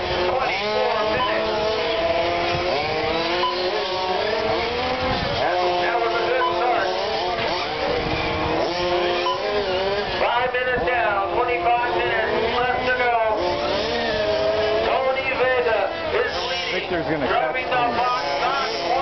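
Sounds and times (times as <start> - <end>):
model race cars whining: 0.0 - 19.0.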